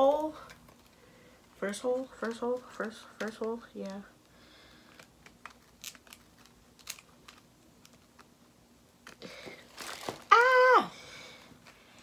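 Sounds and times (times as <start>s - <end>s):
scratchy strap sounds: 4.9s - 8.3s.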